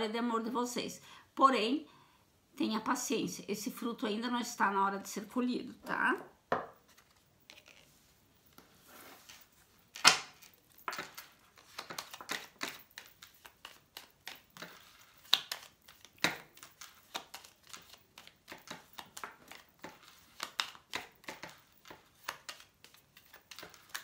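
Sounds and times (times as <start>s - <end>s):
cards being shuffled: 6.8s - 24.0s.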